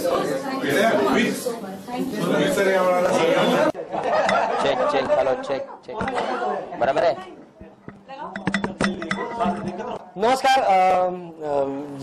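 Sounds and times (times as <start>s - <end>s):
sharp clicks and clinks: 7.8s - 9.8s.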